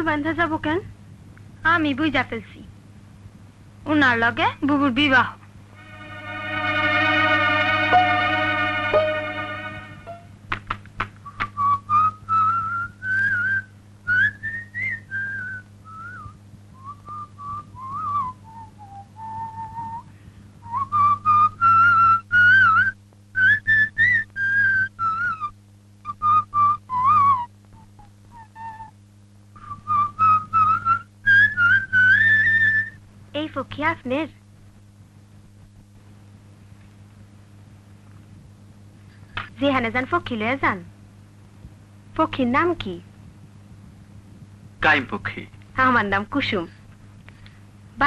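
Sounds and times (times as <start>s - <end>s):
steady low hum: 0.0s - 48.0s
person whistling: 11.3s - 25.5s, 29.6s - 33.0s.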